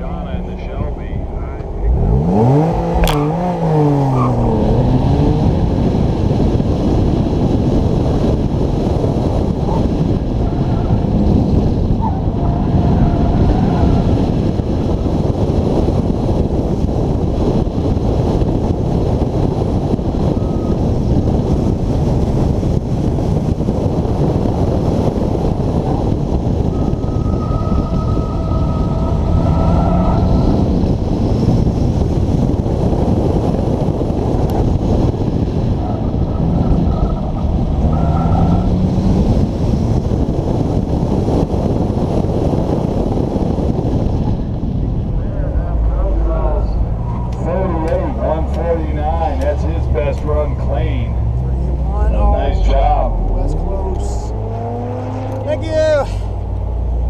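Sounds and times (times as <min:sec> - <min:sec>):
loud rush of car driving: 0:00.0 - 0:57.0
car engine revving hard: 0:01.9 - 0:42.8, 0:52.7 - 0:55.8.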